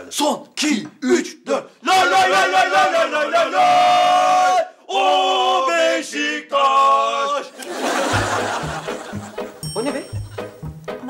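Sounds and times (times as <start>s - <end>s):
men chanting in unison: 1.6s - 7.6s
music with steady low beat: 8.1s - 11.0s.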